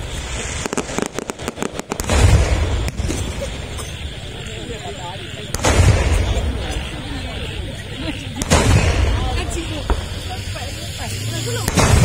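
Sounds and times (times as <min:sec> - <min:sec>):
cannon booms with rumble: 0:05.5 - 0:06.6, 0:08.4 - 0:10.2.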